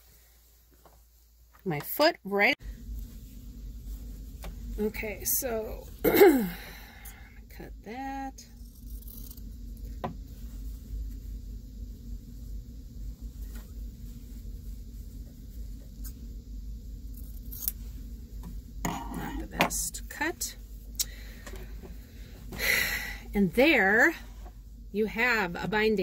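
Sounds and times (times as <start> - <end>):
steady low hum: 0.0 - 26.0
cloth rustling: 2.8 - 6.0.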